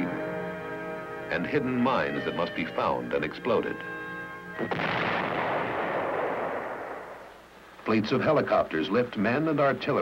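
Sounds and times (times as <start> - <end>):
explosion blast: 4.6 - 7.3.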